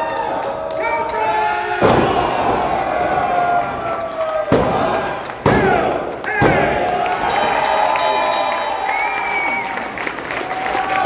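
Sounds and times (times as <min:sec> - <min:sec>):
crowd shouting and cheering: 0:00.0 - 0:11.0
body slamming on ring mat: 0:01.8 - 0:02.8
bell ringing: 0:07.2 - 0:09.3.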